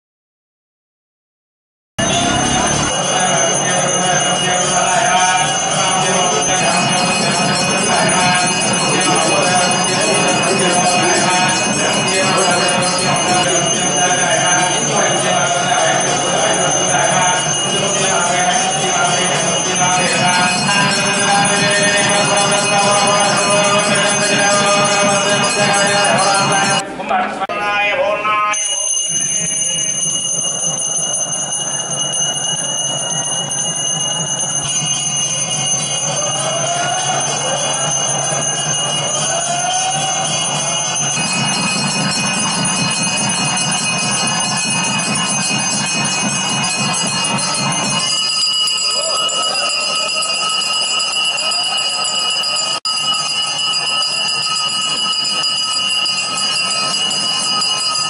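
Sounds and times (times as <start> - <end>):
bells ringing: 2.0 - 26.9, 28.3 - 58.0.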